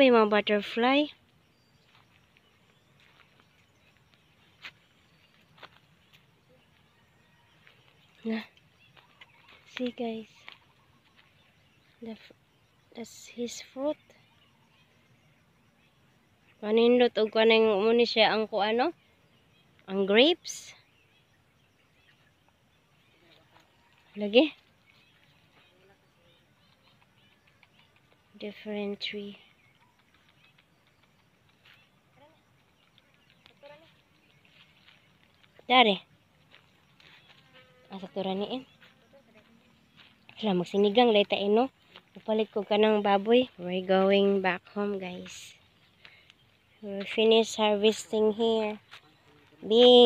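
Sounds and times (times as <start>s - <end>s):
faint bird chirps: 0.0s - 50.0s.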